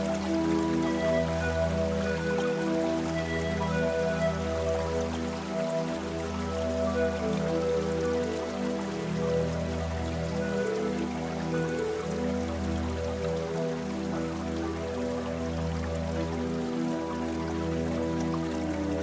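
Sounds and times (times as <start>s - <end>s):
faint rain patter: 0.0s - 19.0s
soft slow piano music: 0.0s - 19.0s.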